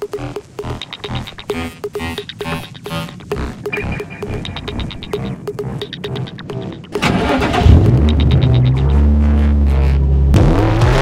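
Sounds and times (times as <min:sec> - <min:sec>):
car engine running: 0:00.0 - 0:11.0.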